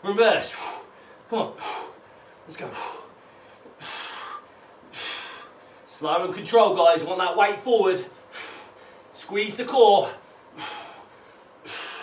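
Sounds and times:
man breathing hard: 0.4 - 5.9, 8.1 - 9.2, 10.1 - 12.0.

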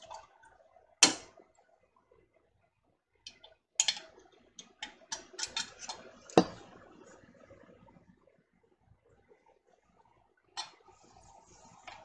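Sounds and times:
small clicks and taps: 3.2 - 6.5.

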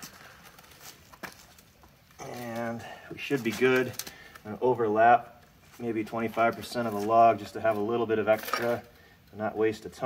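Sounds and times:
faint handling noise: 0.0 - 4.6.

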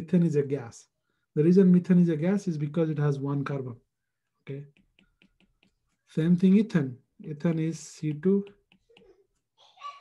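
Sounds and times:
stylus tapping on a tablet: 4.5 - 9.2.

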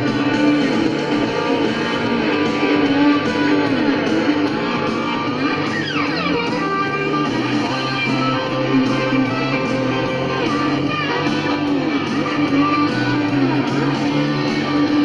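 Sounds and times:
band with electric guitar: 0.0 - 15.0
guitar falling slide: 0.0 - 15.0.

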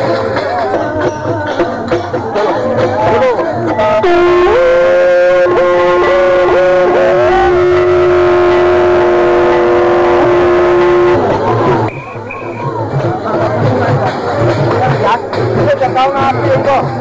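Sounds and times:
conch shells blowing: 3.8 - 12.6.

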